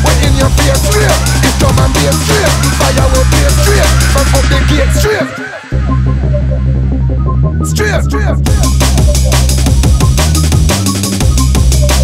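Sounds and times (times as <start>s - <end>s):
drum hits: 0.0s - 4.2s, 8.5s - 11.9s
echoing vocal fragments: 0.0s - 5.9s, 7.6s - 8.5s
deep bass drone: 0.0s - 12.0s.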